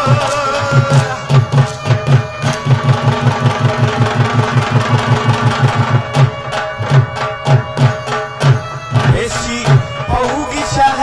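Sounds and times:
dhol drum beating: 0.0 - 11.0.

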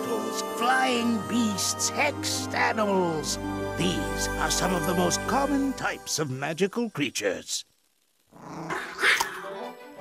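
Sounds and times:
background music: 0.0 - 6.7, 9.2 - 10.0
animal-like creature cry: 8.3 - 9.5.

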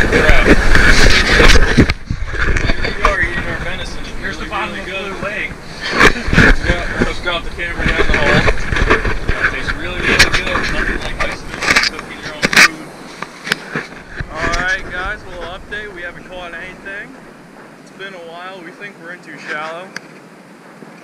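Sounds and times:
people talking indistinctly: 0.0 - 20.0
low rumble: 13.9 - 18.3.

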